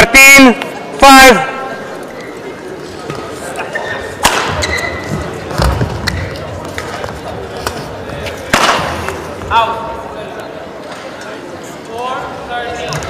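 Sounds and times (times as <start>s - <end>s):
murmur of voices: 0.0s - 13.0s
shoe squeak: 3.7s - 5.3s.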